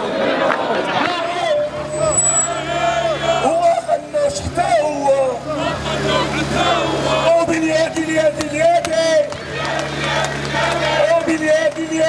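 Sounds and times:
crowd chanting: 0:00.0 - 0:12.0.

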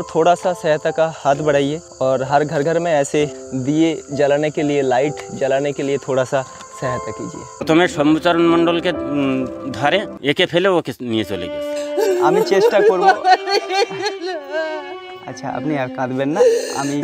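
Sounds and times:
crickets chirping: 0:00.0 - 0:17.0
people talking: 0:00.1 - 0:14.1, 0:15.3 - 0:17.0.

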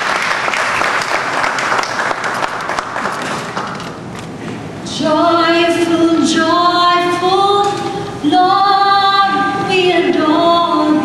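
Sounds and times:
woman singing: 0:04.9 - 0:11.0.

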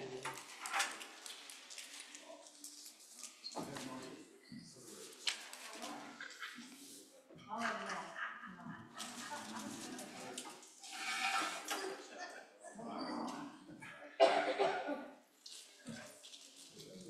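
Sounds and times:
low voices in a room: 0:00.0 - 0:17.0.

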